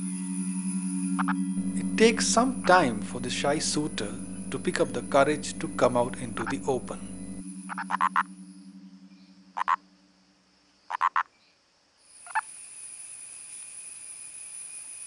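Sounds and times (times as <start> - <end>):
high-pitched hum: 0.0 - 10.5
frog mating call: 1.1 - 9.9, 10.9 - 11.3.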